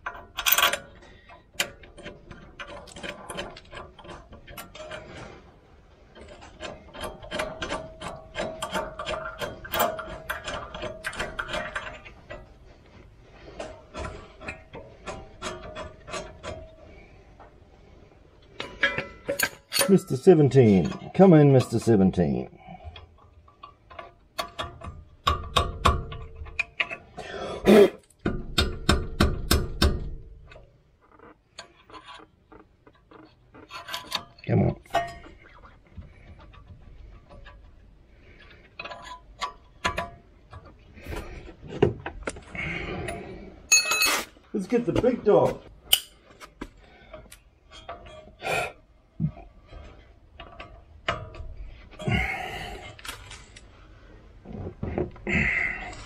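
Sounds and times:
steel tools clinking on metal: 0:43.7 - 0:44.3.

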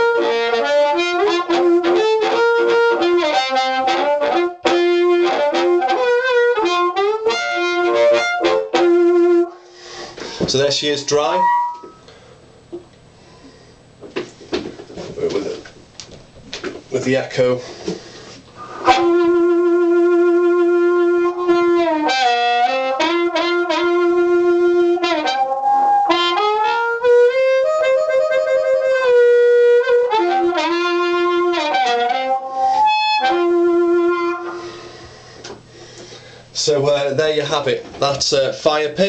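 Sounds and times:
amplified blues harmonica with echo: 0:00.0 - 0:10.0, 0:11.3 - 0:12.2, 0:18.6 - 0:36.4.

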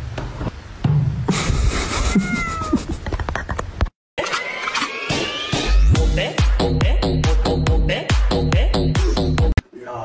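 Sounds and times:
cat meowing: 0:02.1 - 0:02.8.

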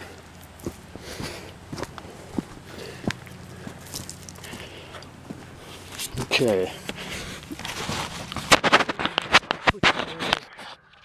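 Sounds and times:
footsteps on dirt and gravel: 0:00.0 - 0:10.9.

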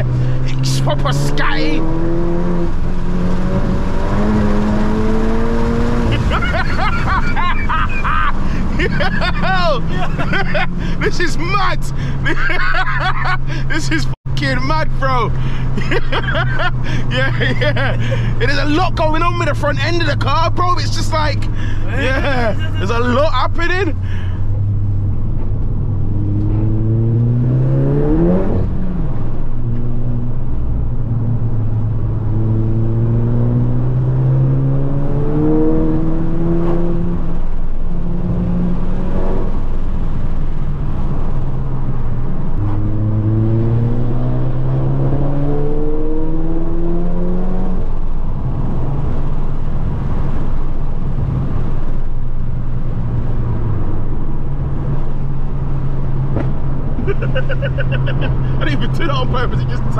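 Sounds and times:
car engine accelerating hard: 0:00.0 - 0:59.9.

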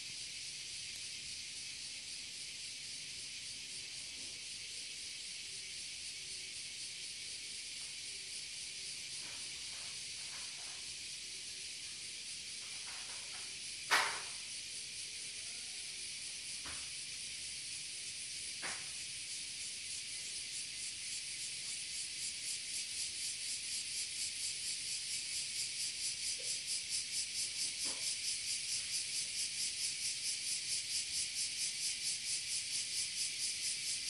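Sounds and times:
cicadas droning: 0:00.0 - 0:34.0.

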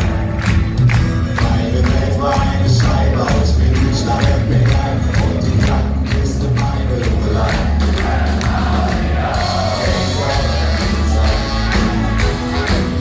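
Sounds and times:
live ska-punk band playing: 0:00.0 - 0:13.0.

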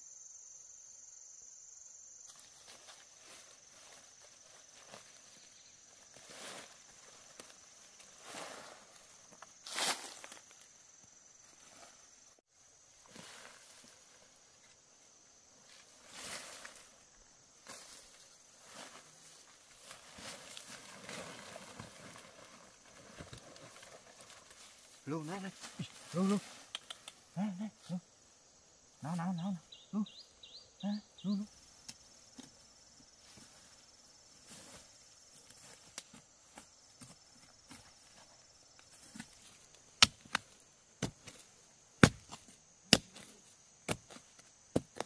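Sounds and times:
insects droning: 0:00.0 - 0:45.0
rustles and crunches in leaf litter: 0:02.3 - 0:10.8, 0:12.9 - 0:14.7, 0:15.5 - 0:26.7.

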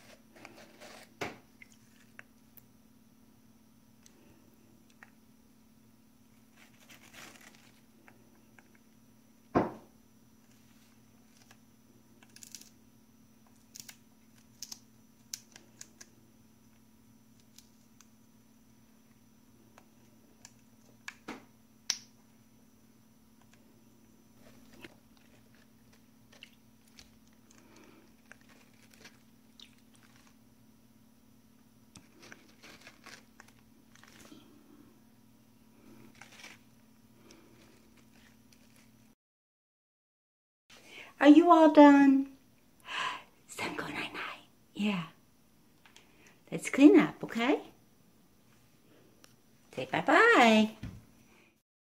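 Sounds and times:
parrot crunching watermelon: 0:00.0 - 0:02.8, 0:06.3 - 0:09.0, 0:10.4 - 0:12.8, 0:23.4 - 0:30.6, 0:31.9 - 0:35.0, 0:35.7 - 0:39.1
steady low hum: 0:00.0 - 0:39.2.

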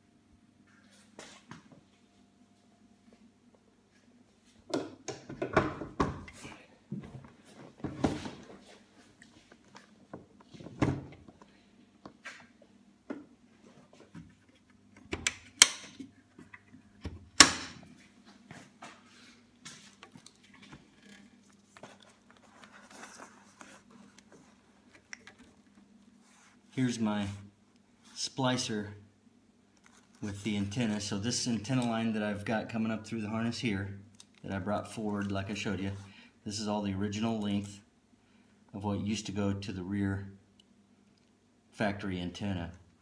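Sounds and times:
knocks and clunks of motorcycle parts: 0:04.7 - 0:06.3.

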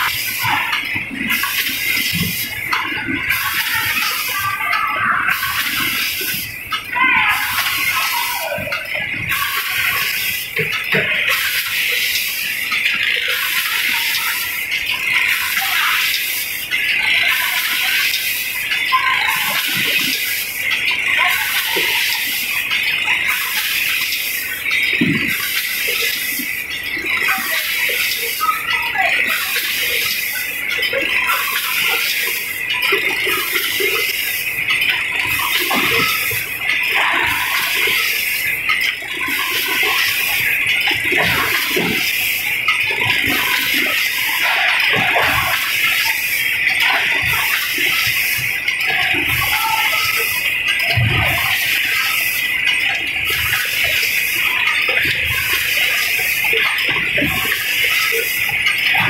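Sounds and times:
packing machine hissing and pulsing: 0:00.0 - 0:06.8.

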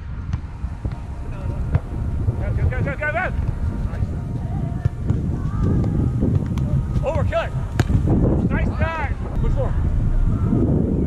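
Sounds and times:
wind rumbling on microphone: 0:00.0 - 0:11.0
ball being hit slap: 0:07.7 - 0:08.0.

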